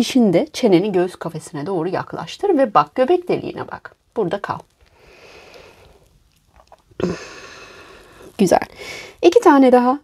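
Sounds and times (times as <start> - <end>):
woman breathing out: 7.0 - 9.2.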